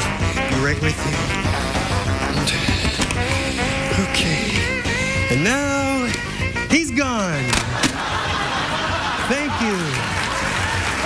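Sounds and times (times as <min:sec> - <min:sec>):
stage music: 0:00.0 - 0:11.0
audience applauding: 0:08.0 - 0:11.0.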